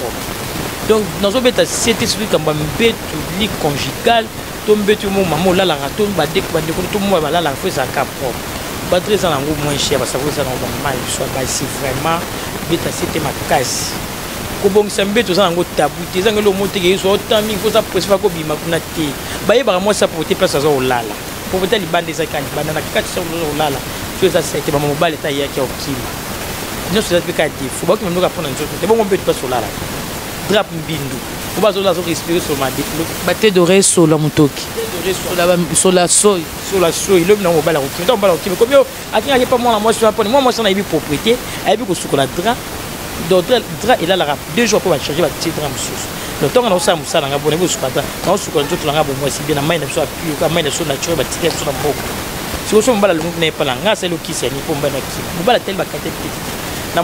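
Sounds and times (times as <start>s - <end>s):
person talking: 0.0s - 26.2s, 26.8s - 29.8s, 30.4s - 57.0s
steady background hiss: 0.0s - 57.0s.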